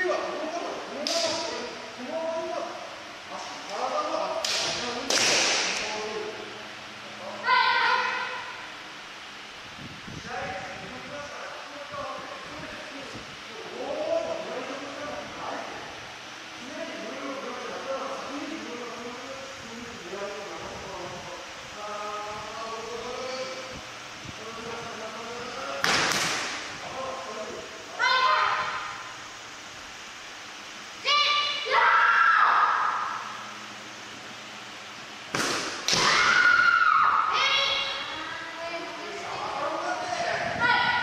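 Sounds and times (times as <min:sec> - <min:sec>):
bamboo sword strike crack: 0:35.3 - 0:36.3.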